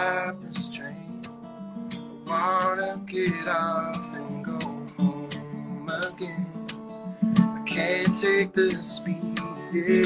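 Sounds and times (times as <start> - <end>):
acoustic guitar fingerpicked: 0.0 - 10.0.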